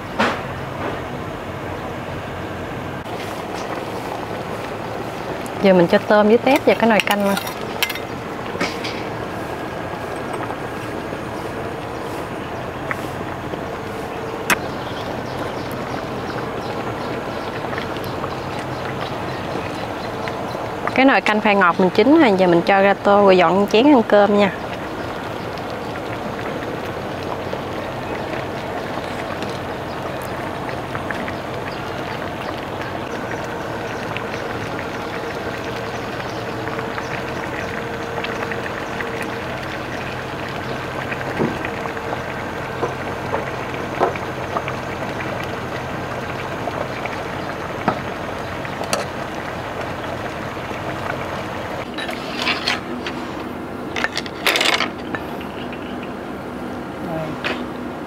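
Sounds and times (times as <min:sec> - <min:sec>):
simmering pot hiss: 0:00.0 - 0:58.0
bowls clinking: 0:06.4 - 0:09.1, 0:10.1 - 0:11.0
metal ladle clinking on pot: 0:06.5 - 0:09.0.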